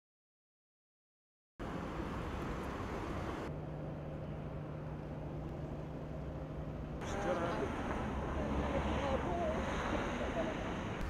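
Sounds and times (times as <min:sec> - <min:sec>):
low traffic rumble: 0:01.6 - 0:11.0
steady low hum: 0:01.6 - 0:11.0.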